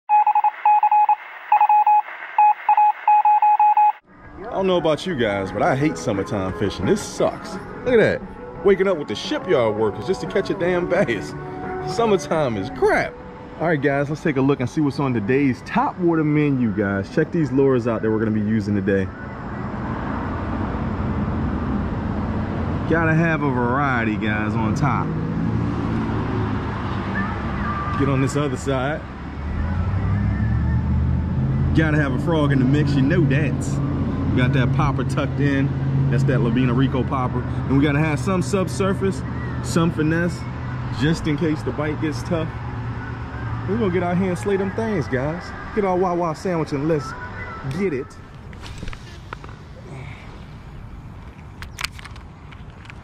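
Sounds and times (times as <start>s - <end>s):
electronic beeps: 0.1s - 4.0s
road traffic: 0.1s - 53.0s.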